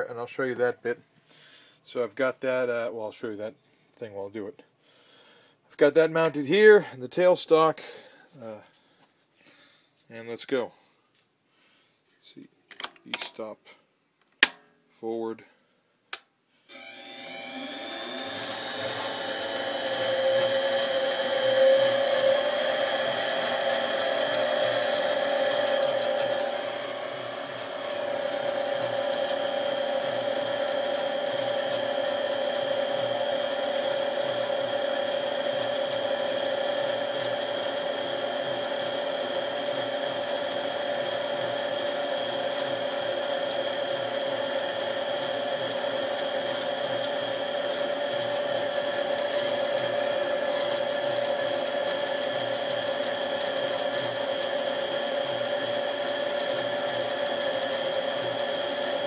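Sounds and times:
drill cutting into aluminum rod: 16.7 - 59.0
metal lathe running: 16.7 - 59.0.

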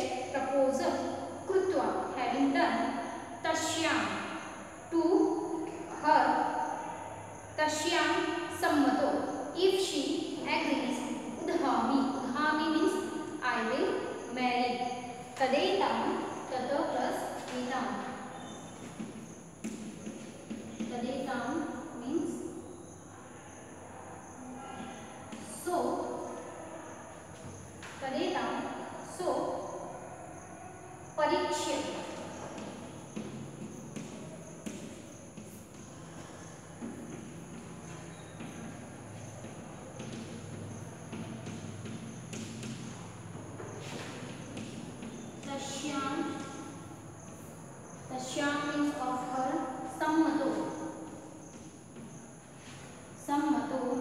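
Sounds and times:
chalk tapping and scratching on chalkboard: 17.4 - 21.7, 31.6 - 47.6, 50.5 - 53.1.

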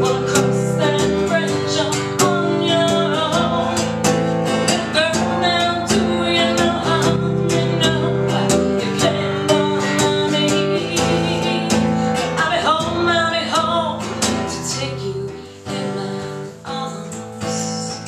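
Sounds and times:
acoustic guitar strumming: 0.0 - 18.0
woman singing: 0.0 - 18.0.

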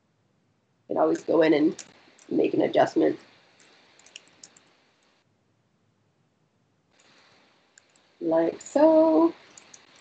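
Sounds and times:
computer mouse clicks: 3.6 - 4.7, 7.8 - 8.1, 9.5 - 10.0.

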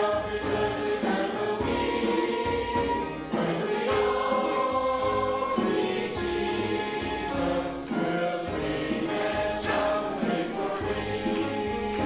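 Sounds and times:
congregation singing a hymn: 0.0 - 12.0
hand drum: 0.0 - 12.0
piano: 0.0 - 12.0.

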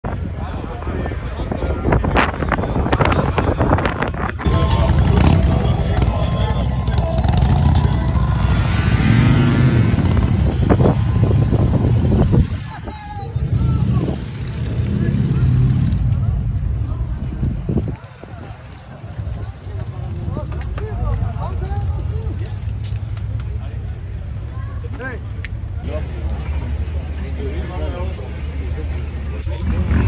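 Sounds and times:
people's voices: 0.0 - 30.0
low engine rumble: 2.6 - 29.9.

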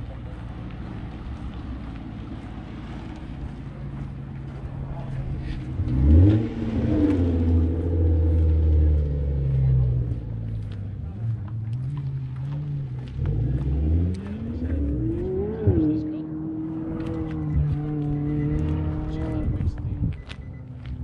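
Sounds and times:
car engine revving: 0.2 - 20.5.

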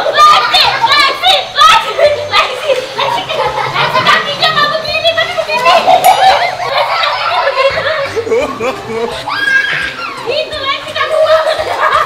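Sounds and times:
people calling out and laughing: 0.0 - 12.0.

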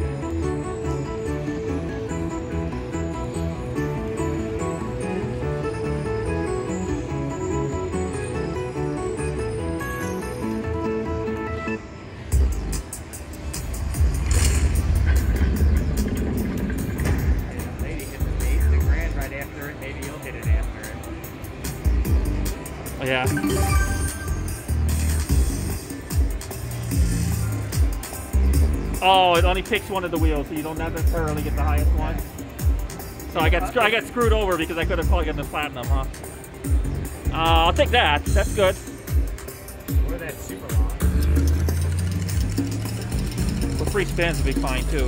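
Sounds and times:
bass-heavy bonus soundtrack: 0.0 - 12.9, 13.9 - 19.3, 21.9 - 36.0, 36.7 - 45.0
slot machine win tune: 23.0 - 25.7.

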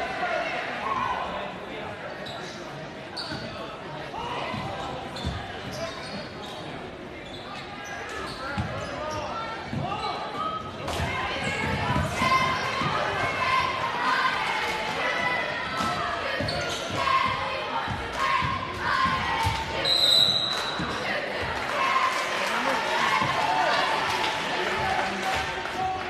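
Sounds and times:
shouting and chatter in hall: 0.0 - 26.0.

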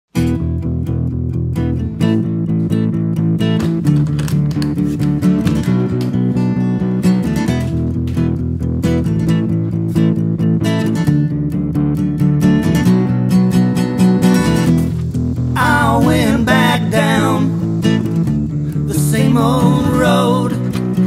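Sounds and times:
acoustic guitar strumming: 0.1 - 21.0.

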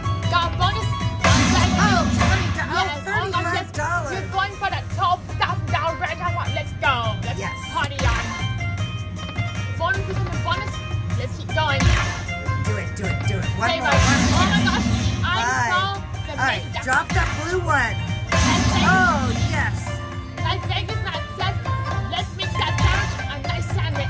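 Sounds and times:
slot machine music and chimes: 1.1 - 4.1, 11.8 - 20.4
casino background noise: 6.6 - 21.6
voices: 9.6 - 24.0.

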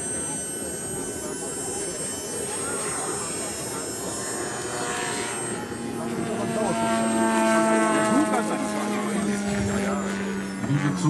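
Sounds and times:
lower engine note: 0.0 - 11.0
model aeroplane engine drone: 0.0 - 11.0.

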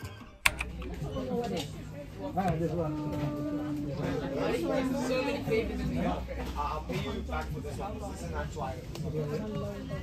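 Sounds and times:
sharp click: 0.4 - 1.0
faint background voices: 0.5 - 10.0.

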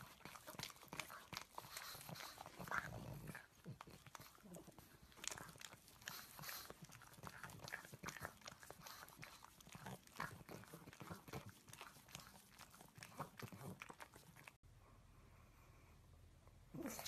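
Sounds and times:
dog licking a chew treat: 0.0 - 14.6.

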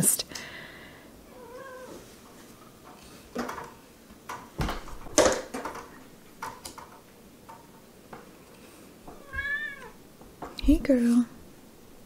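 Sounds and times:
cat meowing: 1.3 - 2.0, 9.2 - 10.0.

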